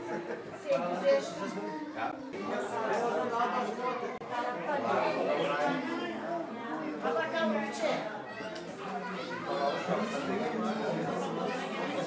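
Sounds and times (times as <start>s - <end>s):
people chattering: 0.0s - 12.0s.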